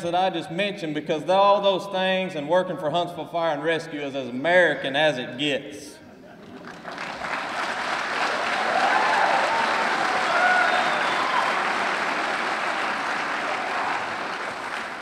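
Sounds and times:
audience applauding: 6.4 - 15.0
cheers: 7.3 - 15.0.

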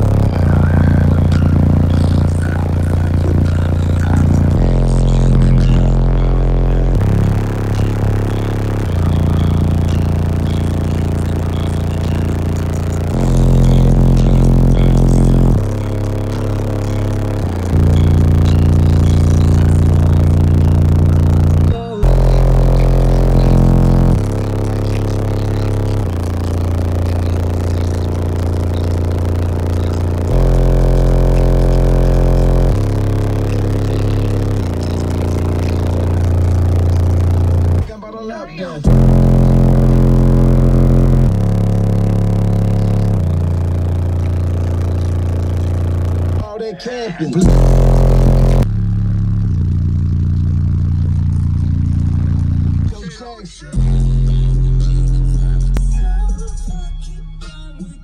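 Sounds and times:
deep bass notes: 0.0 - 37.9, 38.8 - 46.5, 47.4 - 53.0, 53.8 - 58.0
loud song through subwoofers: 0.0 - 58.0.

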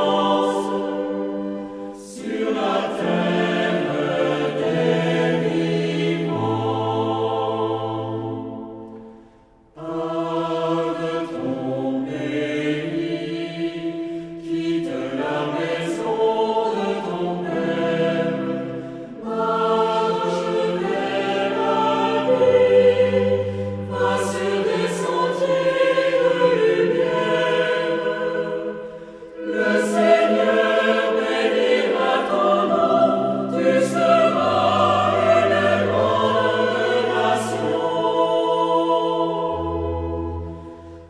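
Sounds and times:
vocal ensemble singing: 0.0 - 41.0
singers breathing: 18.7 - 19.2, 28.8 - 29.4, 40.4 - 41.0.

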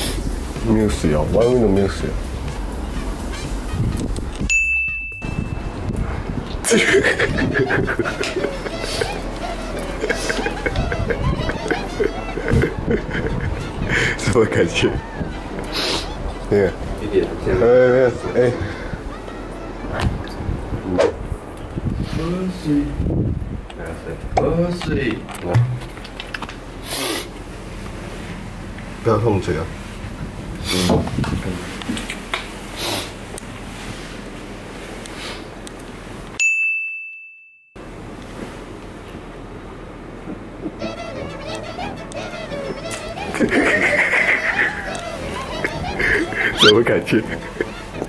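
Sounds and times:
bright bell ding: 4.5 - 5.8, 36.4 - 37.6
people laughing mockingly: 6.6 - 16.6, 42.7 - 48.0.

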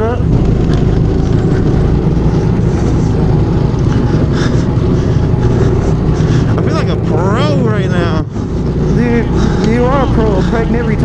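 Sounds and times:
go-kart engine droning: 0.0 - 11.0.

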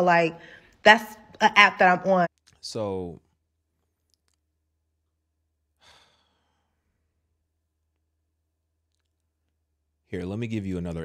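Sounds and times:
man sighing breath: 5.8 - 6.8.

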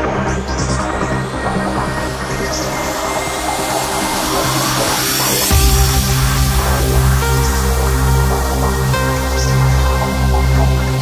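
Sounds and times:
trance music: 0.0 - 11.0
rising white-noise sweep: 1.6 - 11.0.

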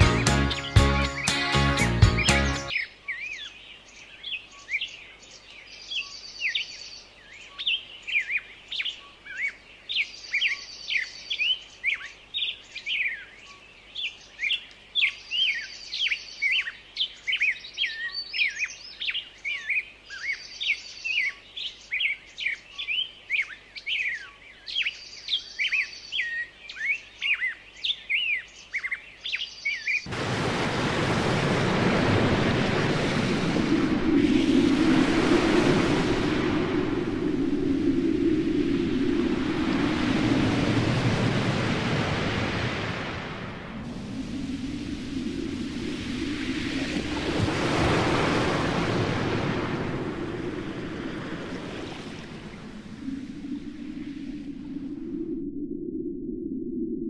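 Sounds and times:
music: 0.0 - 2.7
birds chirping: 0.0 - 30.1
steady rushing noise: 30.1 - 57.0.

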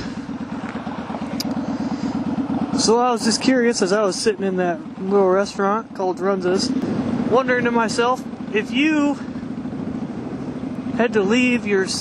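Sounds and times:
motorcycle engine running: 0.0 - 12.0
road noise: 0.0 - 12.0.

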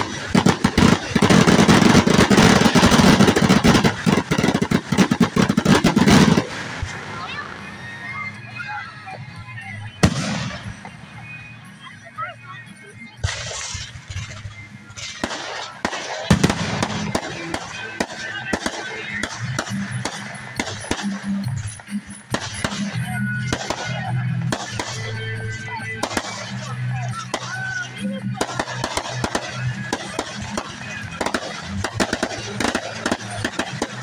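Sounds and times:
fireworks bangs and crackling: 0.0 - 12.1, 12.7 - 34.0
music: 0.0 - 34.0
voices: 0.0 - 34.0.

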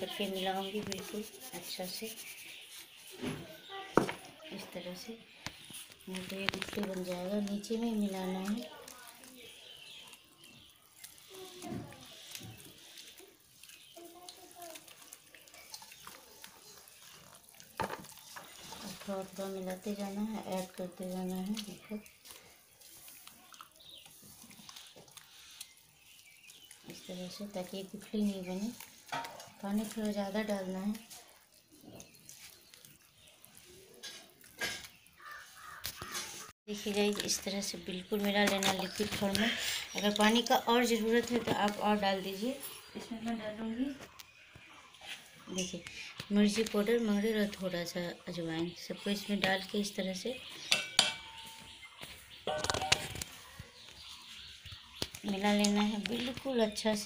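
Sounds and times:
wet dough squelching by hand: 4.8 - 42.8.

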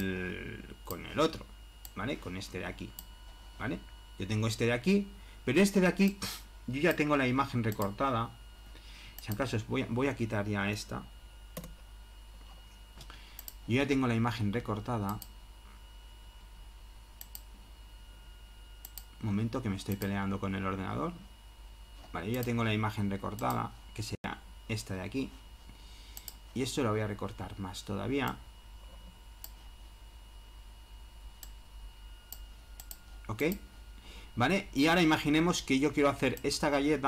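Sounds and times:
low steady hum: 0.0 - 37.0
computer mouse clicking: 11.6 - 11.8, 13.4 - 13.6, 17.2 - 17.5, 18.8 - 19.1, 19.9 - 20.1, 26.2 - 26.4, 32.3 - 33.6.

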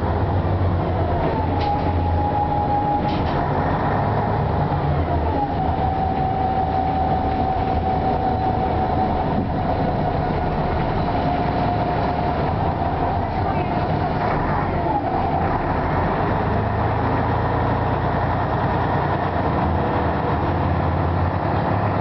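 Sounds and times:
diesel engine rumble: 0.0 - 22.0.

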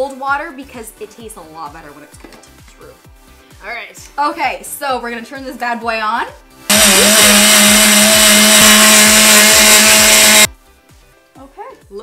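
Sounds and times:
blender running: 6.7 - 10.5.

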